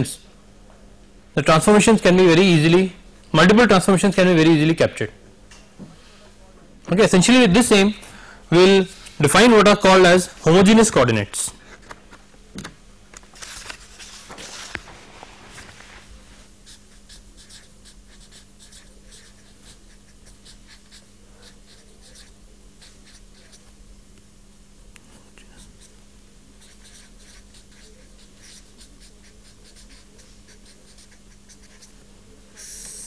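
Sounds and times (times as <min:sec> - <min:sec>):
steady low hum: 0:00.0 - 0:33.0
pen scratching while writing: 0:16.6 - 0:23.6, 0:26.6 - 0:31.9.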